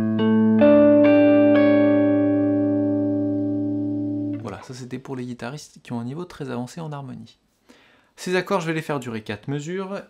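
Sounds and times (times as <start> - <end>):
electric guitar arpeggiated chord: 0.0 - 4.6.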